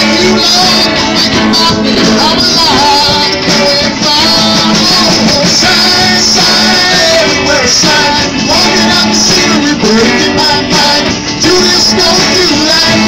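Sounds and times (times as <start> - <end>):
drum kit: 0.0 - 13.0
electric guitars: 0.0 - 13.0
man singing: 0.0 - 13.0.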